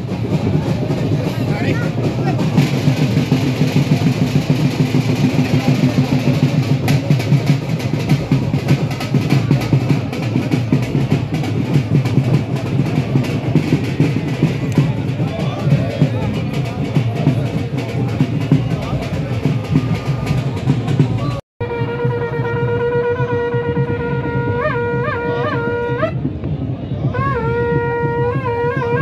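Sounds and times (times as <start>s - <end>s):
crowd voices: 0.0s - 29.0s
drumbeats: 0.0s - 29.0s.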